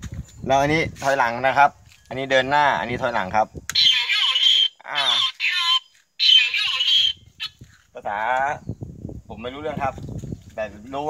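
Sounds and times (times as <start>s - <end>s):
man speaking: 4.8s - 5.4s.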